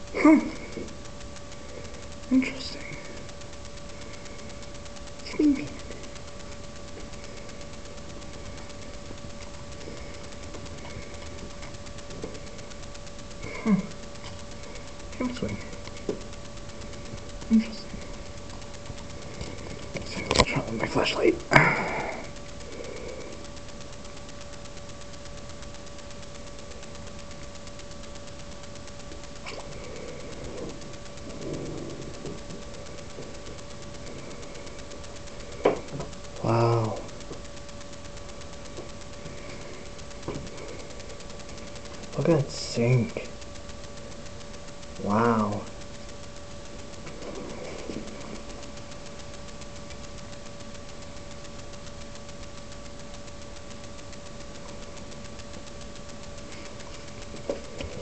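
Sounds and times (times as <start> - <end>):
steady hiss: 0.0 - 58.0
steady thin hum: 0.0 - 58.0.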